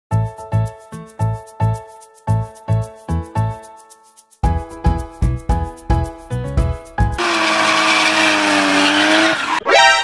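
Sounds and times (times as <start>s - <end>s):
screeching sound effect: 7.4s - 10.0s.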